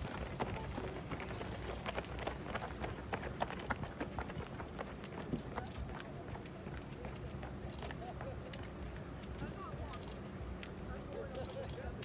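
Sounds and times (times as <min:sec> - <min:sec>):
running footsteps on asphalt: 0:00.0 - 0:12.0.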